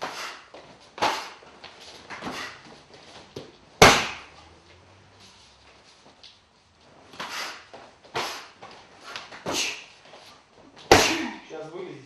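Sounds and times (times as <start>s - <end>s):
strikes slapping a striking pad: 3.8s - 4.3s, 10.9s - 11.4s.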